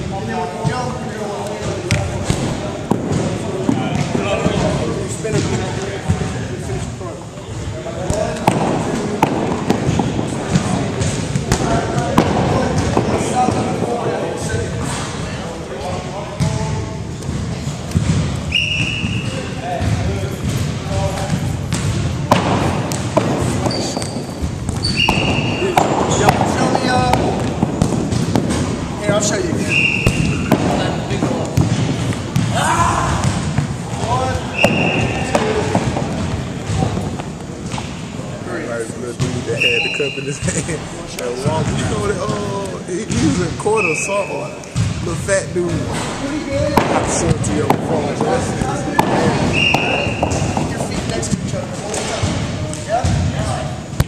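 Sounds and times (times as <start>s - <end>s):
balls bouncing on wooden floor: 1.5s - 6.4s, 8.0s - 14.6s, 16.3s - 38.0s, 46.6s - 53.4s
sneaker squeaks on wood: 23.6s - 26.2s, 29.6s - 30.6s, 34.4s - 35.6s, 49.2s - 51.1s.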